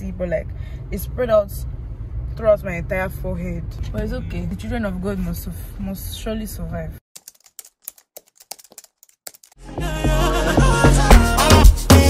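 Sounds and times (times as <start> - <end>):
computer keyboard typing: 7.2 - 9.6.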